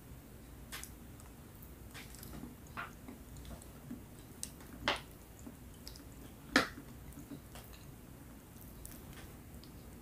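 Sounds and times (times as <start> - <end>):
quiet chewing: 0.7 - 10.0.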